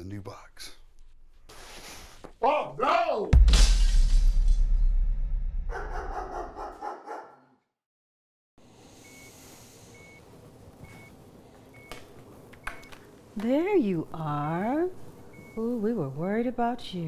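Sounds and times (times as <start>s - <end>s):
faint room hum: 8.6s - 17.0s
heart monitor beeps: 9.0s - 10.2s, 10.8s - 12.0s, 15.3s - 15.7s.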